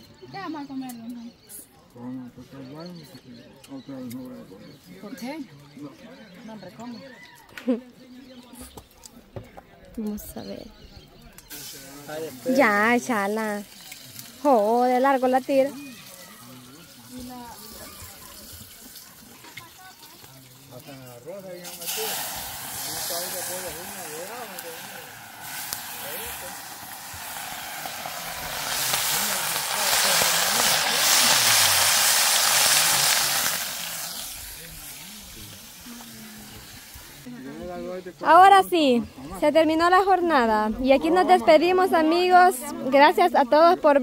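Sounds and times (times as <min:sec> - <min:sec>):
faint voices: 0:00.0 - 0:44.0
hot oil sizzling in a pan: 0:11.4 - 0:37.3.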